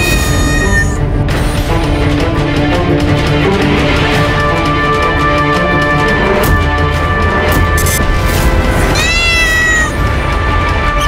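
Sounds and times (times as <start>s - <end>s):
cat meowing: 0.0s - 1.0s, 8.9s - 10.0s
dramatic background music: 0.0s - 11.0s.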